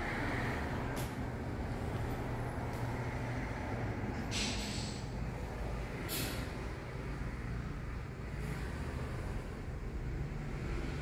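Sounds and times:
short hiss: 4.3s - 5.0s.

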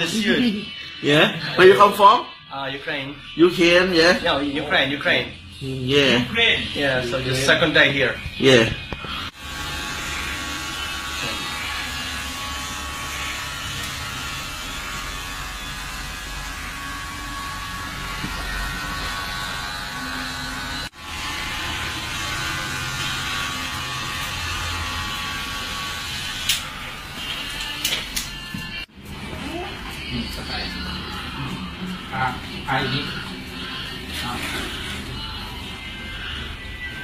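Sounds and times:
electric hair clippers buzzing: 8.8s - 28.9s.

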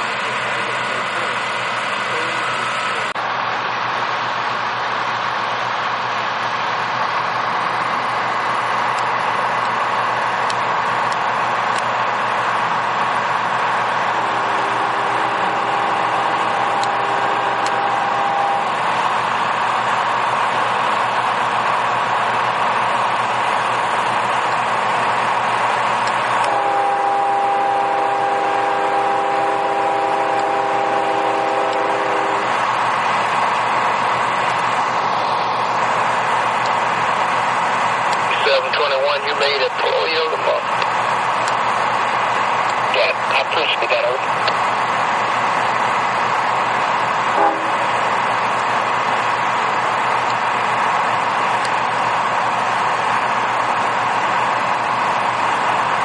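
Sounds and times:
diesel machines running: 0.0s - 56.0s
multi-chime air horn blasts: 14.2s - 18.7s, 26.5s - 32.5s, 47.4s - 47.8s
voice over radio scanner: 38.3s - 40.7s, 42.9s - 44.3s.

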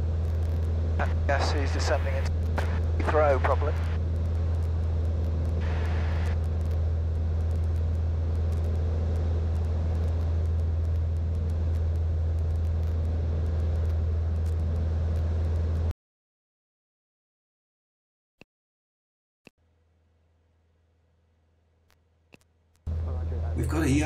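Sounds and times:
propeller aircraft engine droning: 0.0s - 15.9s, 22.9s - 24.0s.

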